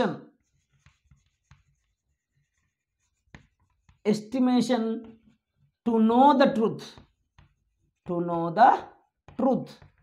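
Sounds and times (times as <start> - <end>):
chalk tapping on chalkboard: 0.4 - 5.8, 6.6 - 10.0.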